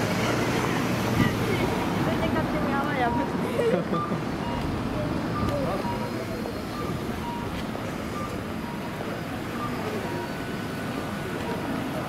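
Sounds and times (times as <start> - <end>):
passing traffic and people hum: 0.0 - 12.0
short electronic beeps: 3.0 - 9.0, 9.6 - 10.5.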